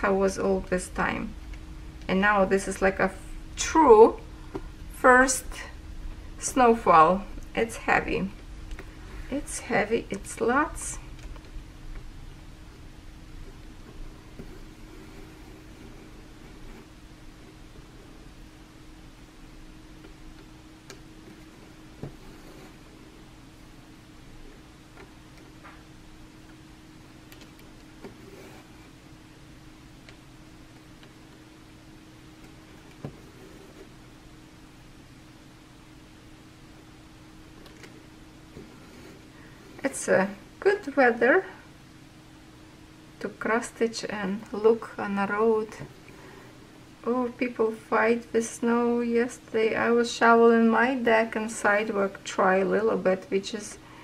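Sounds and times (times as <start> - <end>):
low hum and hiss: 0.0 - 54.0.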